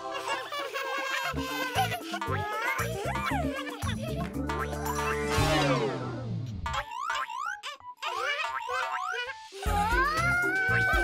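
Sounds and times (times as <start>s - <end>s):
cartoon boing sound effects: 4.5s - 7.8s.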